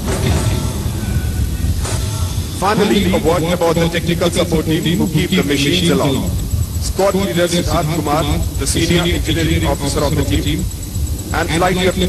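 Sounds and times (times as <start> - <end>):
hiss: 0.0 - 7.8
helicopter rotor and engine rumble: 0.0 - 12.0.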